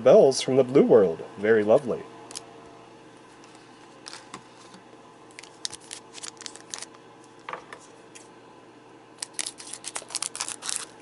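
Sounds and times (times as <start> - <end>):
cards clicking and rustling: 5.4 - 7.0, 9.2 - 11.0.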